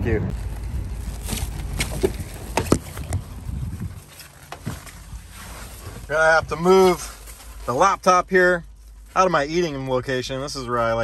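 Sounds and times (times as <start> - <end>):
wind rumble on microphone: 0.0 - 6.9.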